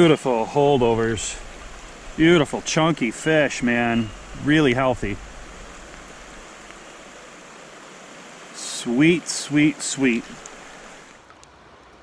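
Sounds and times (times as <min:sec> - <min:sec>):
fast-flowing creek rushing: 0:00.0 - 0:11.3.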